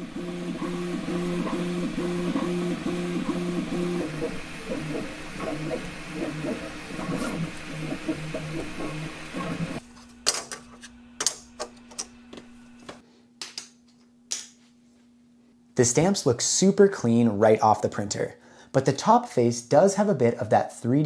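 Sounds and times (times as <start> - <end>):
printer stepper motors whining: 0.0 - 9.8.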